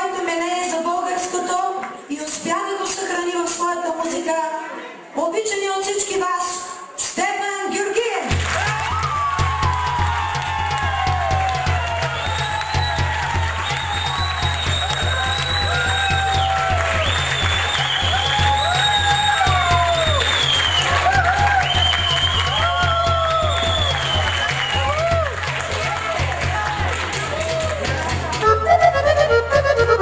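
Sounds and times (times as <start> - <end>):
live band music: 8.3 - 30.0
audience applause: 8.4 - 28.5
pulsing bass beat: 8.4 - 30.0.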